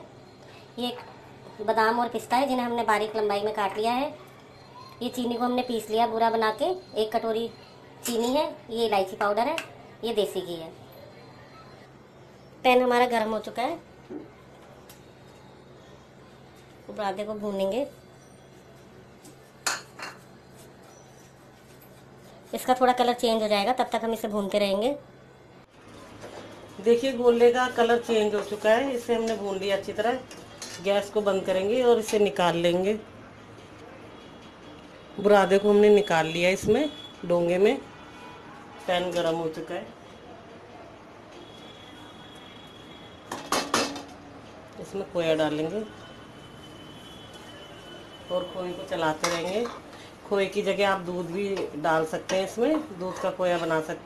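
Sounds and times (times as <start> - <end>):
kitchenware clinking on frying pan: 43.3 - 44.1.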